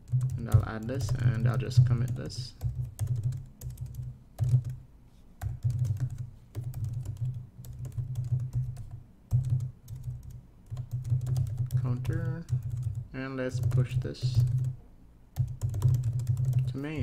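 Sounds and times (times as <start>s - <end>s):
computer keyboard typing: 0.0s - 4.8s, 5.4s - 14.8s, 15.4s - 17.0s.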